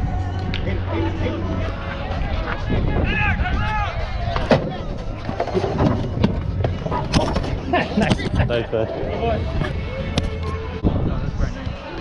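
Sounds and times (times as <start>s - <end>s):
wind rumbling on microphone: 0.0s - 12.0s.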